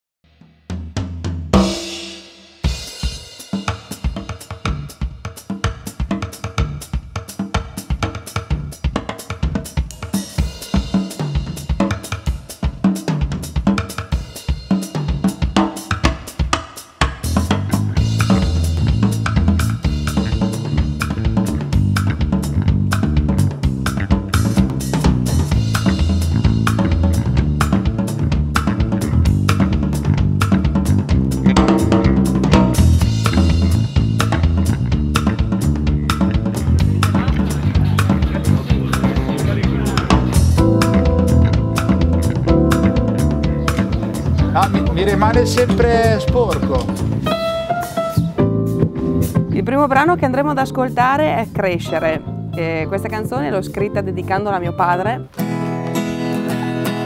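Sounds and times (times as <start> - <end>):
drum kit beat: 0.4 - 55.2
band music: 1.5 - 57.0
bass line: 17.2 - 55.3.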